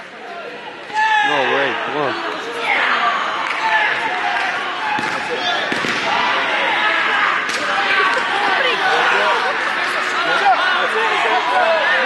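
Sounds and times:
hubbub of echoing voices: 0:00.0 - 0:12.0.

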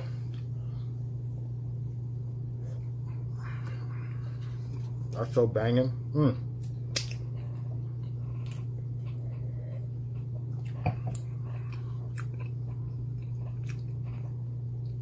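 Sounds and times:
steady low hum: 0:00.0 - 0:15.0
soft chewing: 0:07.2 - 0:14.7.

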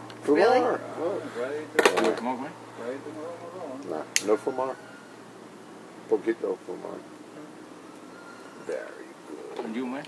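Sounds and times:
soft talking voices: 0:00.2 - 0:10.0.

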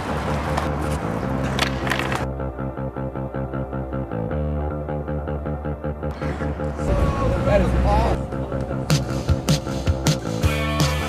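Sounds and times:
skateboard clacks: 0:00.0 - 0:02.3
skateboard wheels rolling on pavement: 0:00.0 - 0:02.4
music playing: 0:00.0 - 0:11.0.

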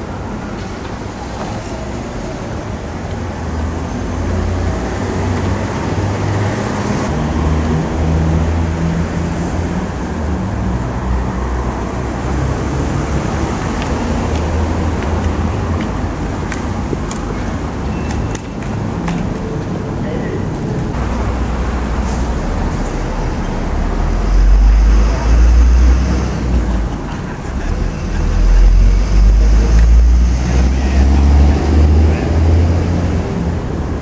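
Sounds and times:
diesel engine rumbling: 0:00.0 - 0:34.0.

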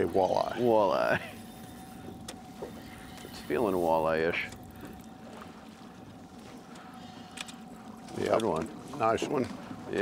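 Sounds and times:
water lapping against metal boat: 0:00.0 - 0:10.0.

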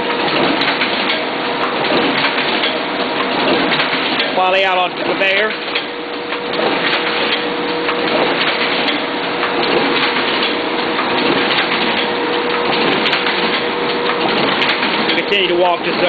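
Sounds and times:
paper machine clatter: 0:00.0 - 0:16.0.

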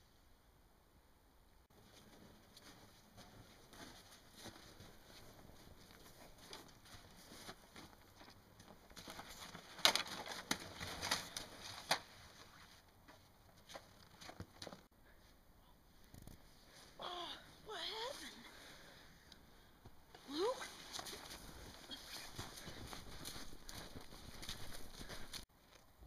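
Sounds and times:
footsteps on packed snow: 0:01.8 - 0:08.3, 0:20.7 - 0:25.4
people grappling in snow: 0:01.8 - 0:12.9, 0:20.1 - 0:25.5.

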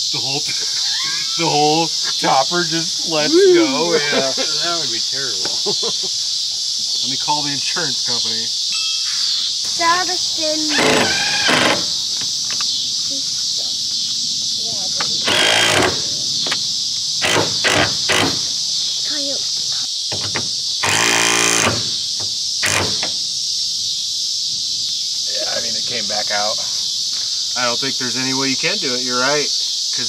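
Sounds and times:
crickets chirping: 0:00.0 - 0:30.0
person laughing: 0:00.4 - 0:02.3, 0:03.0 - 0:06.2.

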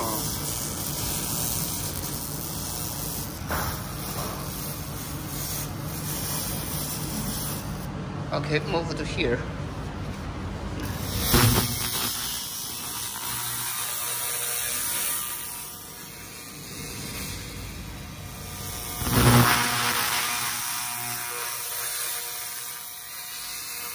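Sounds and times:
laser crackling on metal plate: 0:00.0 - 0:07.8, 0:10.8 - 0:23.9.

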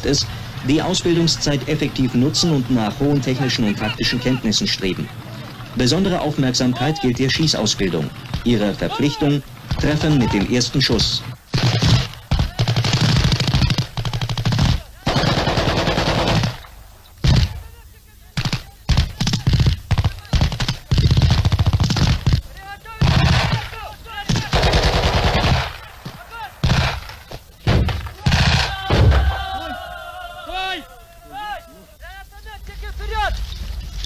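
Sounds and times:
automatic rifle fire: 0:11.5 - 0:17.6, 0:18.4 - 0:22.4, 0:23.0 - 0:26.0, 0:26.6 - 0:29.3.

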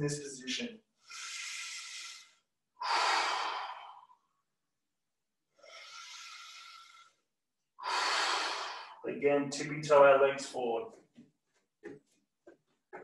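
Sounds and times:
person breathing deeply: 0:01.0 - 0:04.3, 0:05.6 - 0:07.2, 0:07.8 - 0:09.0.

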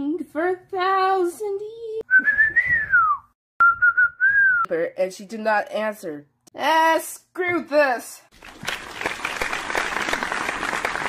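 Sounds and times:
person whistling: 0:02.1 - 0:04.7.

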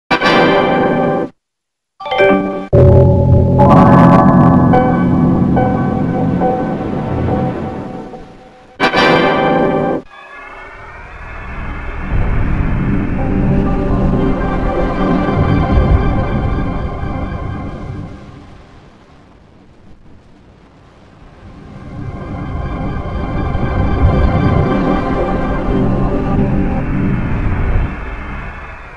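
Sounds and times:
long electronic chord: 0:02.0 - 0:08.9, 0:13.1 - 0:18.4, 0:21.7 - 0:27.9
loud chord burst: 0:02.0 - 0:10.1, 0:13.2 - 0:18.4, 0:21.9 - 0:27.8.

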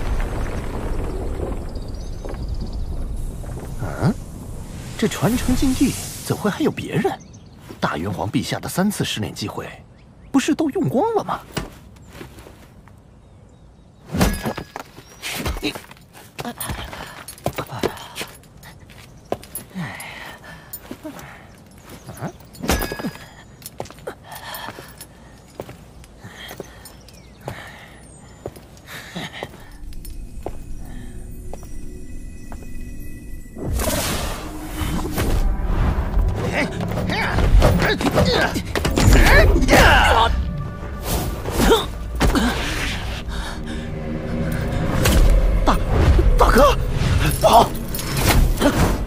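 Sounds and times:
person breathing heavily: 0:26.2 - 0:30.0, 0:42.3 - 0:44.9.

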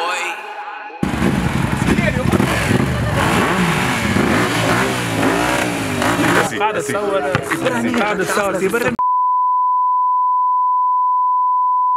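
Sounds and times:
steady electronic beep: 0:06.4 - 0:11.9.

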